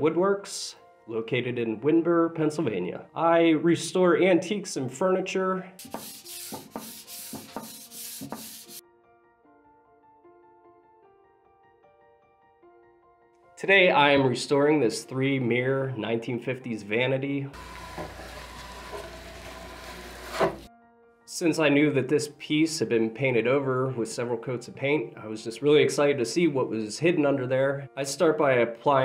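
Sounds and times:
soft background music: 0.0 - 17.7, 18.4 - 29.0
putty knife scraping paint: 5.8 - 8.8, 18.0 - 20.7
sandpaper rubbing on wood: 5.8 - 8.8, 18.1 - 20.7.

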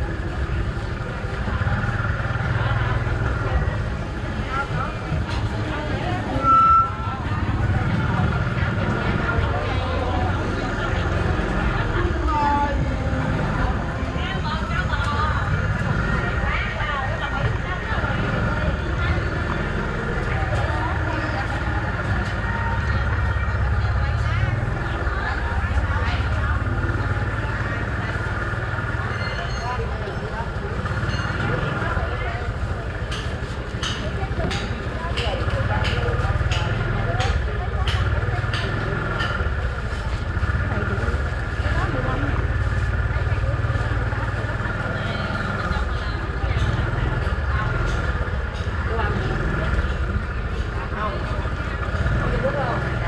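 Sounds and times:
low engine rumble: 0.0 - 53.0
vendors and shoppers chattering: 0.0 - 53.0.

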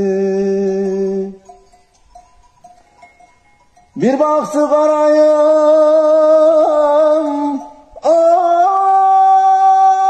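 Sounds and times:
sheep bells clinking: 0.0 - 10.0.

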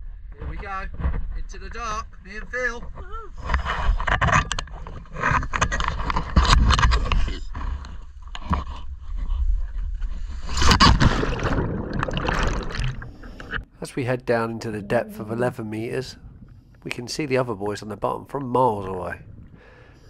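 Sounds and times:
water splashing and sloshing: 7.6 - 15.6
low rumble: 11.4 - 17.3.

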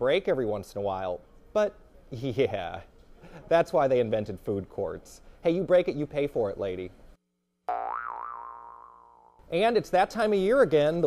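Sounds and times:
comic boing: 7.7 - 9.4.

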